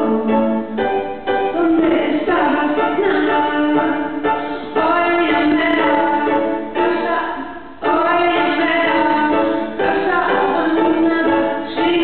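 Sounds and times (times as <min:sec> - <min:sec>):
woman singing: 0:00.0 - 0:00.7, 0:01.5 - 0:12.0.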